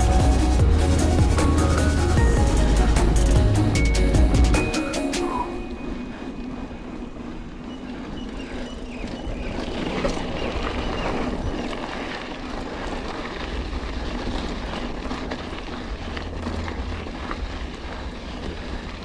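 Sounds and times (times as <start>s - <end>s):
bike tyres crunching on gravel: 0.0s - 4.7s, 6.0s - 19.0s.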